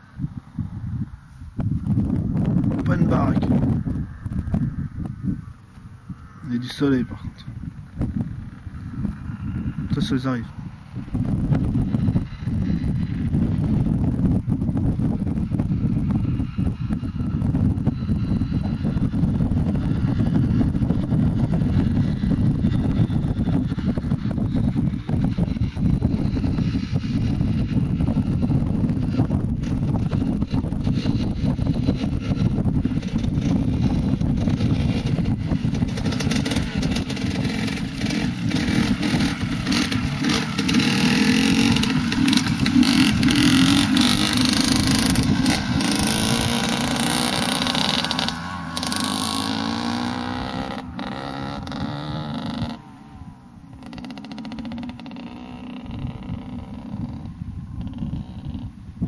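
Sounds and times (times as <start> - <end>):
wind rumbling on microphone: 0.0 - 59.0
motocross bike revving past: 15.4 - 58.8.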